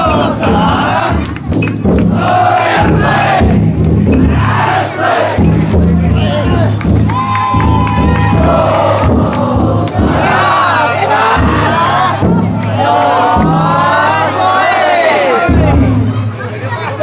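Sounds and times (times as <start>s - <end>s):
crowd shouting and chanting: 0.0s - 17.0s.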